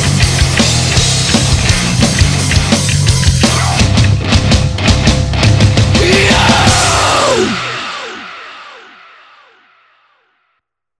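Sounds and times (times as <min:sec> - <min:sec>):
heavy metal band playing: 0:00.0 - 0:10.0.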